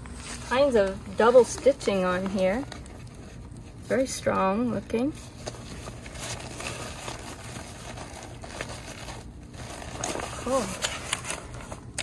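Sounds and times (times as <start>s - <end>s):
nylon fabric rustling: 0.0s - 12.0s.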